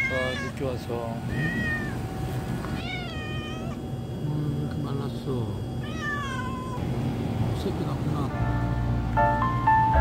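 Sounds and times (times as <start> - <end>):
cat meowing: 0.0 - 2.1, 2.7 - 3.8, 5.8 - 6.8.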